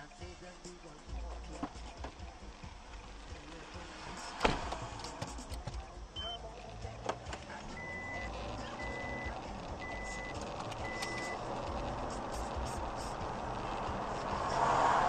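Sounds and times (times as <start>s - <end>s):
car road and engine noise: 0.0s - 15.0s
short electronic beeps: 6.2s - 6.4s, 7.7s - 11.4s.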